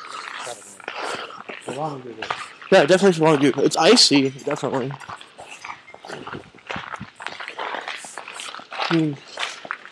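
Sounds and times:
footsteps in snow and ice: 0.0s - 9.9s.

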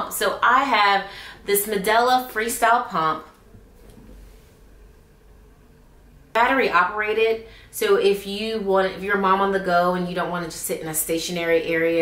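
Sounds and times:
faint low hum and hiss: 0.0s - 12.0s.

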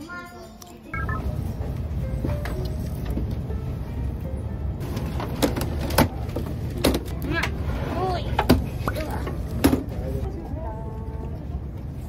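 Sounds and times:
short high beeps: 1.0s - 1.3s.

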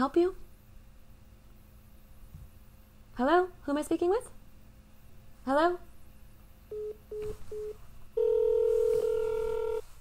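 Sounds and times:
long telephone tone: 6.7s - 9.8s.

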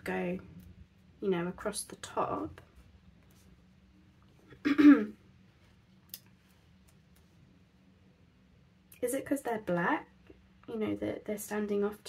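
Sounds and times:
woman clearing her throat: 4.6s - 5.2s.

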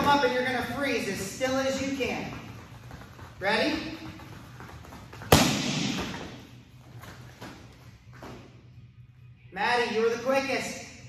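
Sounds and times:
kick paddles slapped together: 4.9s - 6.4s.

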